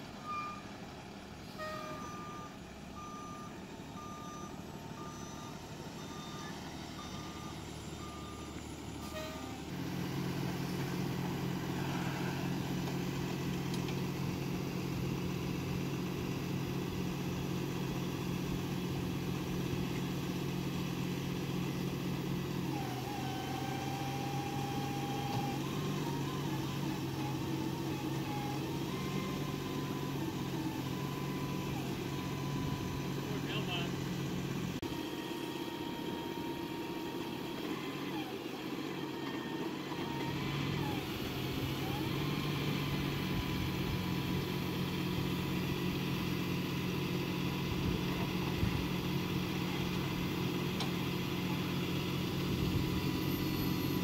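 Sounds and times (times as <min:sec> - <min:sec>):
truck engine running: 0:00.0 - 0:54.0
reversing alarm beeping: 0:00.2 - 0:00.8, 0:01.4 - 0:09.7, 0:23.0 - 0:33.9.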